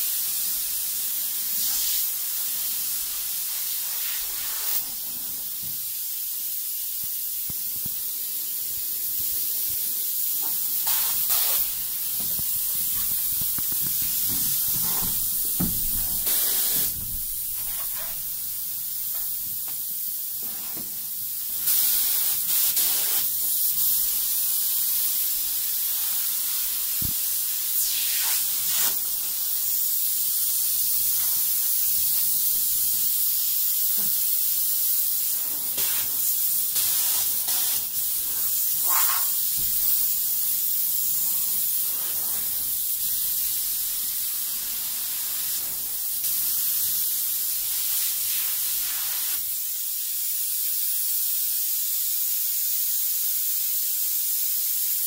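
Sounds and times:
foam gun spraying hiss: 0.0 - 55.0.

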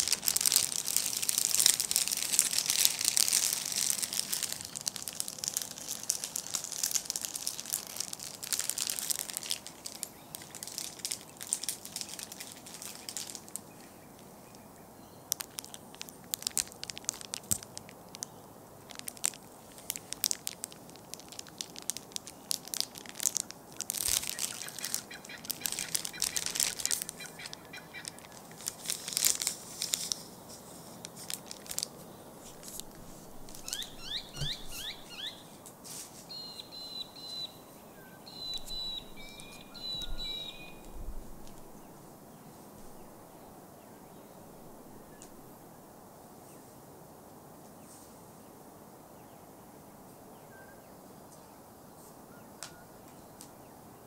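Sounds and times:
crackly scratching and crinkling: 0.0 - 14.7, 15.3 - 36.4, 38.4 - 43.3.

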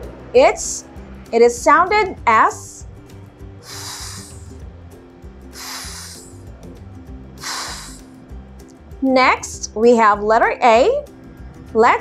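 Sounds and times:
soft background music: 0.0 - 12.0
woman making breathy f sound: 3.6 - 4.6, 5.6 - 6.5, 7.4 - 8.1.

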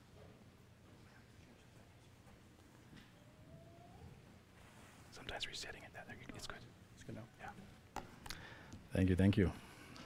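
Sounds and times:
men whispering: 1.0 - 2.6, 5.0 - 7.8.

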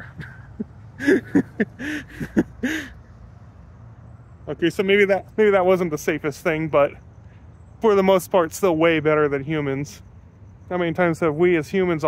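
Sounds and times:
person laughing: 0.0 - 3.0.

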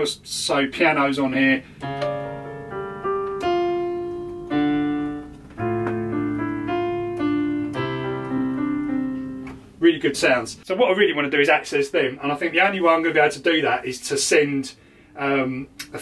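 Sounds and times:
piano chords: 1.8 - 9.9.

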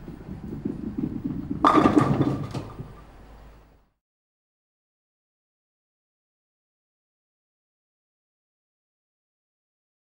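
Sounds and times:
bowling pins crashing: 0.0 - 3.2
bowling ball rolling: 0.0 - 3.5.

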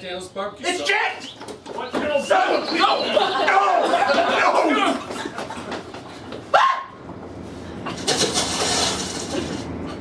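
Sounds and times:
audience laughing: 2.7 - 6.2.

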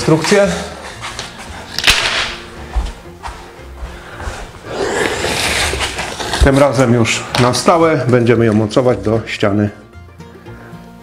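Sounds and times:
board scraping against wall: 4.7 - 6.9.

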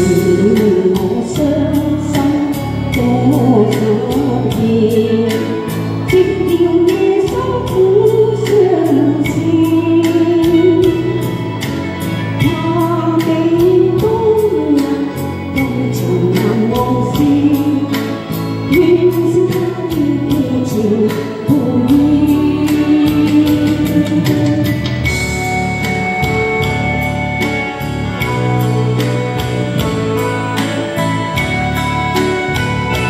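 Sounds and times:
woman singing into a microphone: 0.0 - 25.7
accompanying music with steady beat: 0.0 - 33.0.

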